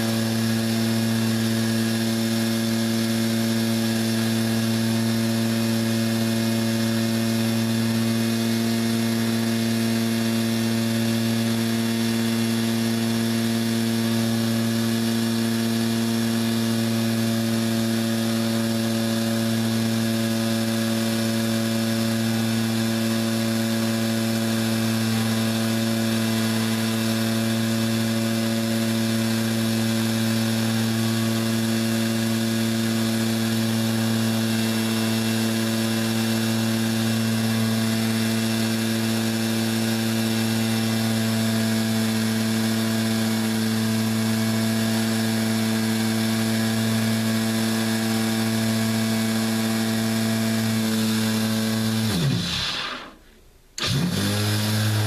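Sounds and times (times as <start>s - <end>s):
electric sander humming: 0.0s - 53.2s, 53.8s - 55.0s.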